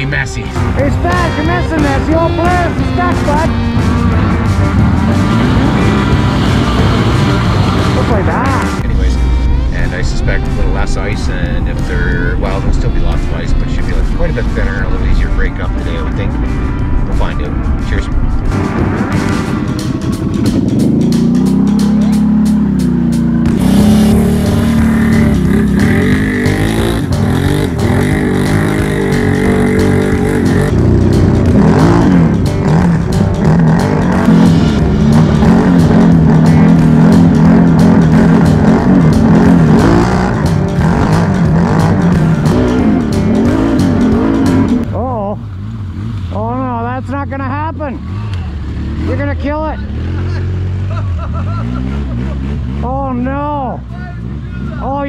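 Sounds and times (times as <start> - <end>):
atv engine revving: 0.0 - 55.0.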